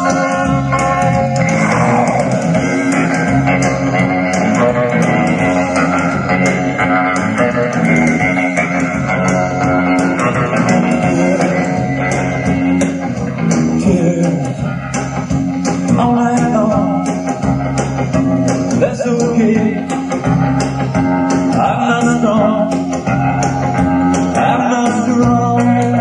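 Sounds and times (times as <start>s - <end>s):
bass guitar: 0.0s - 26.0s
electric guitar: 0.0s - 26.0s
steady drum beat: 0.0s - 26.0s.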